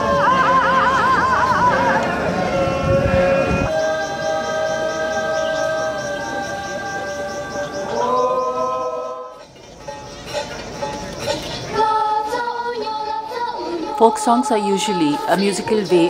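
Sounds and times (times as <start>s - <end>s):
group singing folk song: 0.0s - 9.5s, 11.0s - 16.0s.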